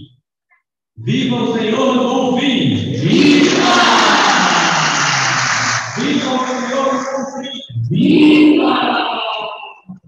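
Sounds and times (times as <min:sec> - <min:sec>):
congregation applauding: 0:03.0 - 0:07.4.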